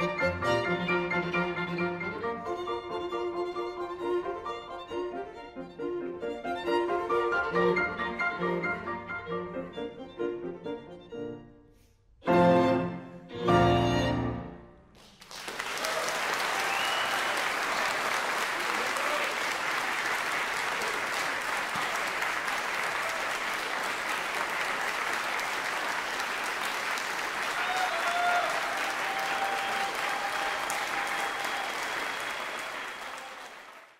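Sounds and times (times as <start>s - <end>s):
audience applauding: 15.0s - 33.9s.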